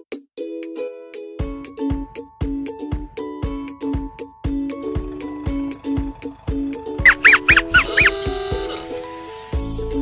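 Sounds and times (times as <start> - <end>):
background music: 0.0 - 10.0
high honk-like squeaks: 7.0 - 9.0.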